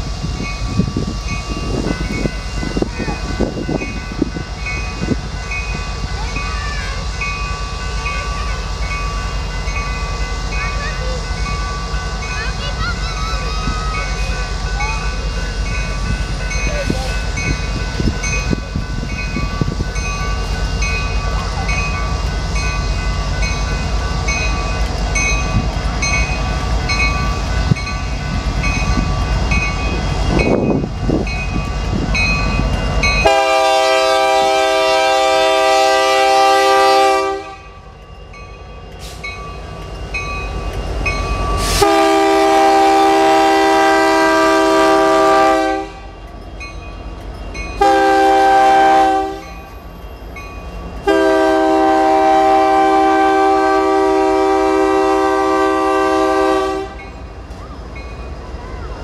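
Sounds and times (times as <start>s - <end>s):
diesel locomotive rumble: 0.0s - 59.0s
train air horn blasts: 33.2s - 37.7s, 41.6s - 46.2s, 47.8s - 49.6s, 51.0s - 57.0s.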